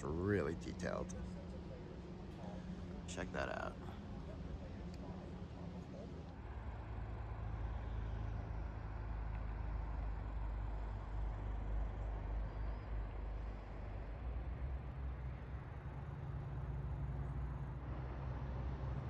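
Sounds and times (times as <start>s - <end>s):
low rumble of outdoor ambience: 0.0s - 19.0s.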